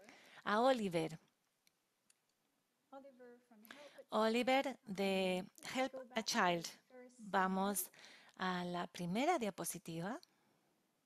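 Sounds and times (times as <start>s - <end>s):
woman speaking: 0.0s - 1.3s, 3.0s - 10.2s.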